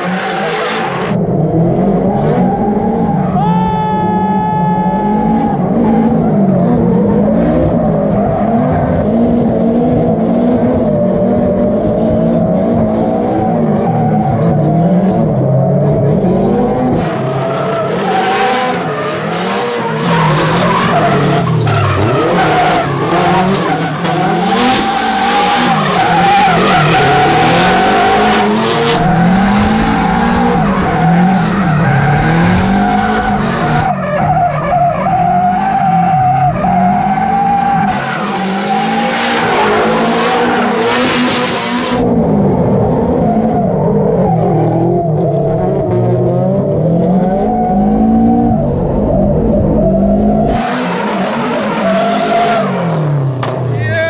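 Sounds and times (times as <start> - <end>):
tires squealing on asphalt: 0.0 - 1.2, 1.9 - 42.1, 47.1 - 54.0
car engines revving: 0.0 - 54.0.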